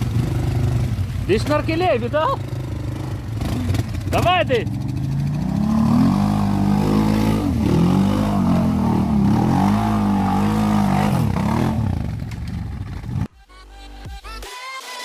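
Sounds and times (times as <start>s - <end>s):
atv engine revving: 0.0s - 13.3s.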